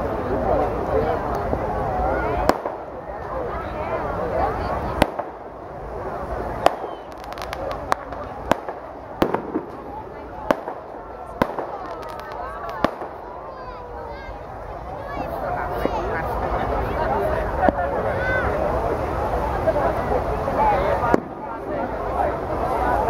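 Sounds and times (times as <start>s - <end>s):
crowd voices: 0.0s - 23.0s
firecracker bangs: 2.4s - 2.9s, 5.0s - 5.6s, 6.6s - 13.3s, 21.1s - 21.7s.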